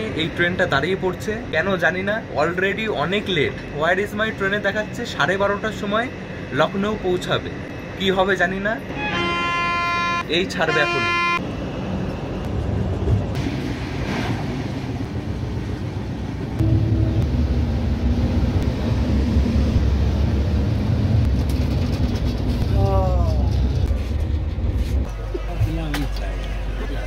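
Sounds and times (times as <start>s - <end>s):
wind: 0.0s - 27.0s
train wheels rumbling on rail: 9.8s - 27.0s.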